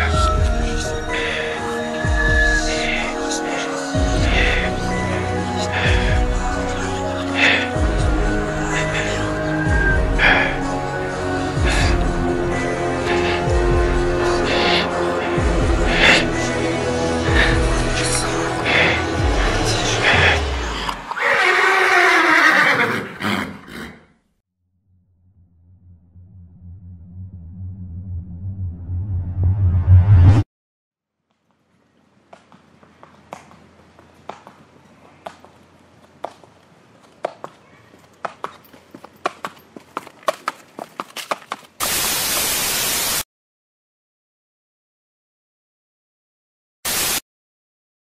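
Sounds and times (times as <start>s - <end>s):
static hiss glitch: 41.8s - 43.2s, 46.9s - 47.2s.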